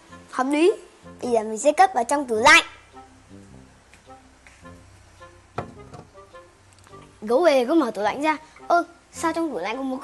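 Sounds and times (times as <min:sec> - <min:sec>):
soft background music: 0:00.0 - 0:10.0.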